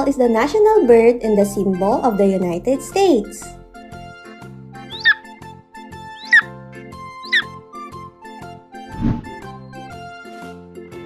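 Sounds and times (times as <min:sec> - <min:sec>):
bird of prey calling: 0:04.8 - 0:05.3, 0:06.0 - 0:07.6.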